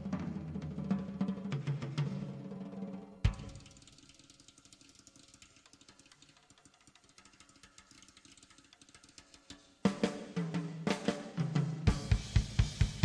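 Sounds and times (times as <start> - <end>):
drum kit solo: 0.0 - 4.1, 8.5 - 13.0.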